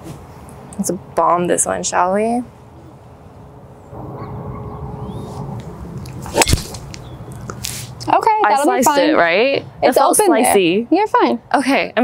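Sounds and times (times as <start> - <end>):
golf club striking ball: 5.5 - 7.8.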